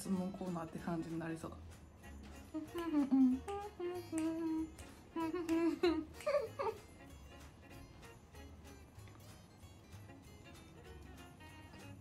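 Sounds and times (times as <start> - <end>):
background music with guitar: 0.0 - 12.0
woman humming a tune: 2.4 - 7.0.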